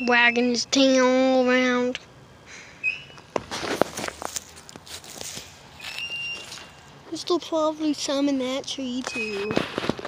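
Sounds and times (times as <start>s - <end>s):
rustling handling noise: 3.3s - 6.9s
footsteps on grass: 3.4s - 6.9s.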